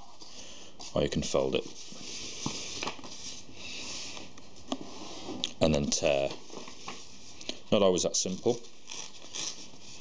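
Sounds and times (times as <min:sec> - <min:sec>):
paper rubbing: 0:08.5 - 0:10.0.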